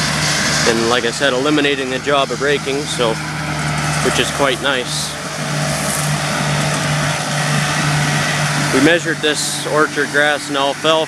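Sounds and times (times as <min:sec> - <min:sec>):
mower hissing: 0:00.0 - 0:11.0
tractor engine hum: 0:00.0 - 0:11.0.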